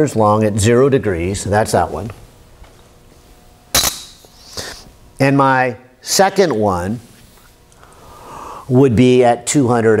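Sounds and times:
sharp click with high ring: 3.7 - 4.3.

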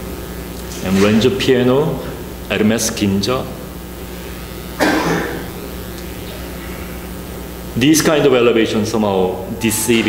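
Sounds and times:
low room hum: 0.0 - 10.0
man coughing: 4.8 - 5.5.

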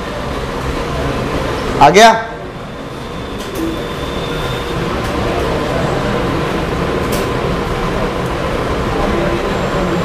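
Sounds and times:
room noise hiss and hum: 0.0 - 10.0.

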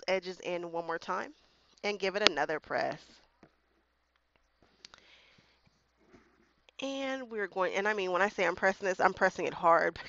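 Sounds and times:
woman's voice: 0.0 - 3.0, 6.8 - 10.0.

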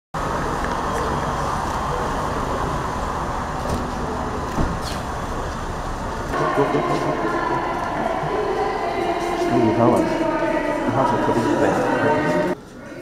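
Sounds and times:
traffic noise: 0.2 - 13.0.

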